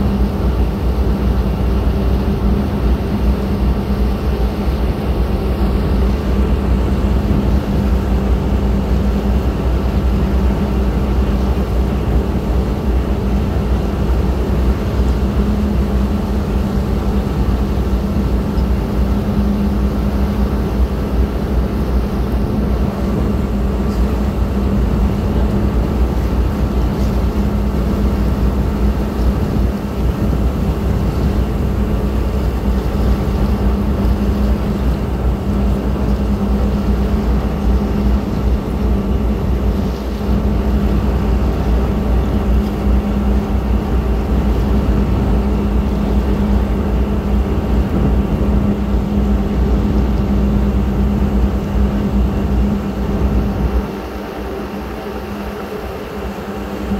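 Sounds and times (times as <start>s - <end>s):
boat diesel engine droning: 0.0s - 56.9s.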